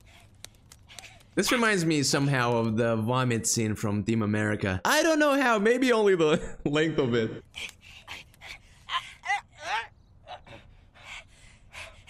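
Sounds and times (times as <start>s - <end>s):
cartoon boys grunting and crying out: 8.0s - 10.5s.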